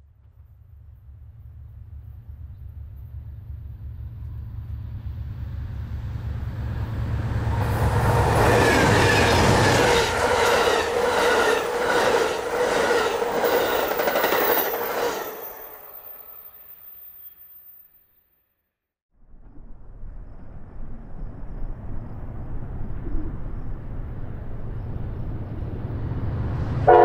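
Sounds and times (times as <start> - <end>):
diesel locomotive rumble: 0.2 - 16.3
train wheels clattering: 7.9 - 16.1.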